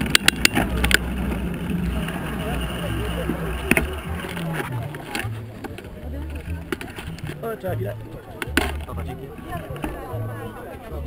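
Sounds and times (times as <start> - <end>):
background voices: 0.0 - 11.0.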